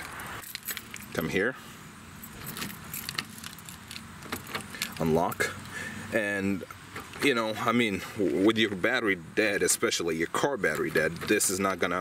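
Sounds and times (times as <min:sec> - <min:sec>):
keys jangling: 0:00.4 - 0:01.1, 0:02.2 - 0:05.1
key turning in car lock: 0:02.3 - 0:05.1.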